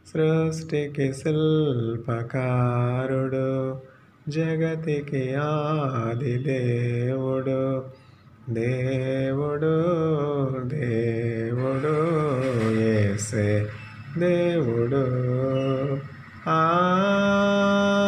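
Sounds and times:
man singing unaccompanied: 0:00.0 - 0:18.0.

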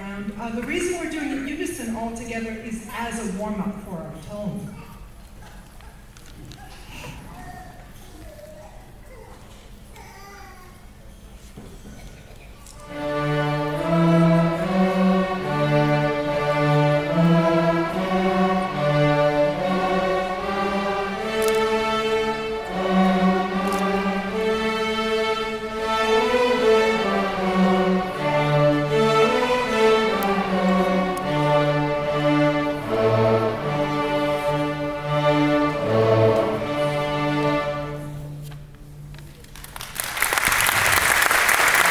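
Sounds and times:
string orchestra slow melody: 0:12.7 - 0:39.4.

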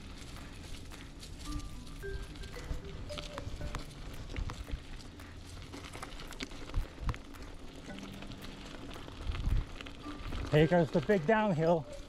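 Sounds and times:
bike rattling over bumps: 0:00.0 - 0:12.0
bike tyres rumbling on dirt trail: 0:00.0 - 0:12.0.

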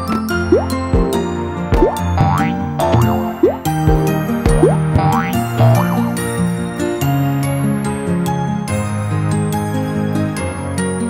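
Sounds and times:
bouncy children's music: 0:00.0 - 0:11.0
springy boings: 0:00.5 - 0:06.2.

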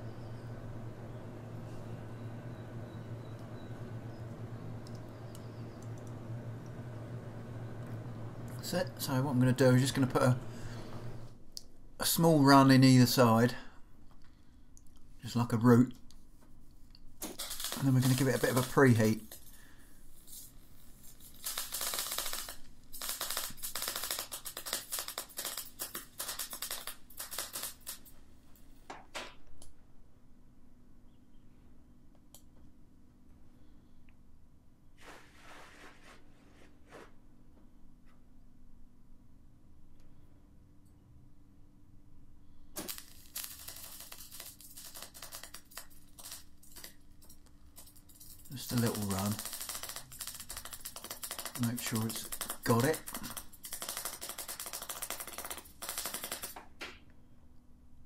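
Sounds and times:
welding arc crackling: 0:04.1 - 0:11.3, 0:17.2 - 0:28.2, 0:42.8 - 0:56.8.

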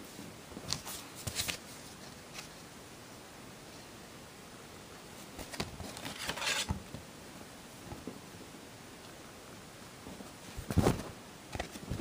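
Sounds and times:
cd case clicks and rustles: 0:05.4 - 0:06.8
sliding rustle: 0:05.4 - 0:06.8.

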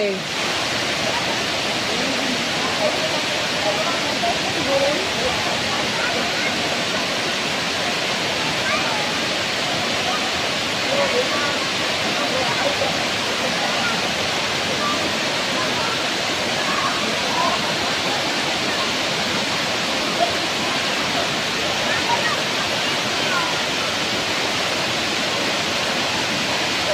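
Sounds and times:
faint voices of people: 0:00.0 - 0:26.9
waterfall rushing into pool: 0:00.0 - 0:26.9.

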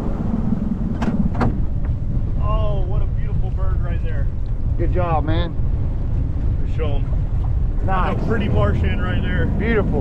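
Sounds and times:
wind on microphone: 0:00.0 - 0:10.0
outboard motor running: 0:03.0 - 0:10.0.

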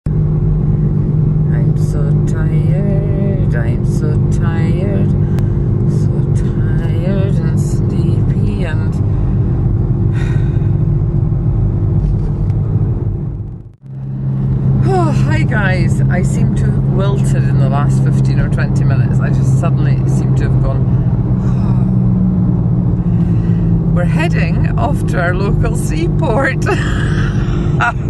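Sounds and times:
car engine and road noise: 0:00.0 - 0:28.0
woman talking: 0:01.5 - 0:09.0, 0:14.8 - 0:22.0, 0:23.9 - 0:28.0.

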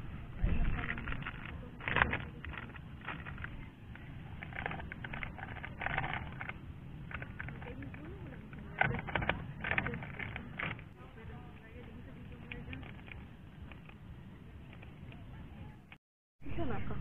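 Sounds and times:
voices talking quietly: 0:00.1 - 0:17.0
plastic sachet crinkling: 0:00.8 - 0:10.9.

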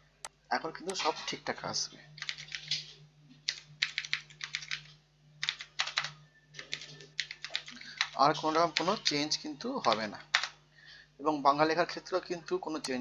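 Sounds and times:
low steady hum: 0:00.0 - 0:13.0
computer keyboard typing: 0:02.2 - 0:10.6.

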